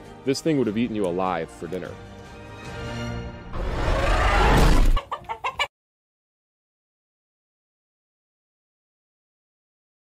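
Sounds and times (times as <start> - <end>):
dinosaur roar: 3.6 - 5.0
chicken clucks: 4.9 - 5.7.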